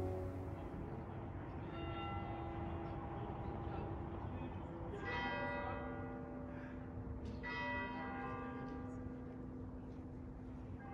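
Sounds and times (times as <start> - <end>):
large bell tolling: 0.0 - 0.9
low background noise: 0.0 - 10.9.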